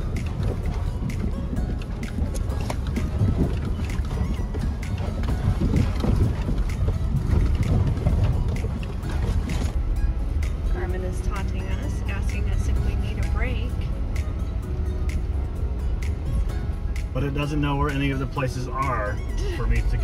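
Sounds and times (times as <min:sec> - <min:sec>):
rattles and knocks: 0:00.0 - 0:11.6
truck cabin rumble: 0:00.0 - 0:20.0.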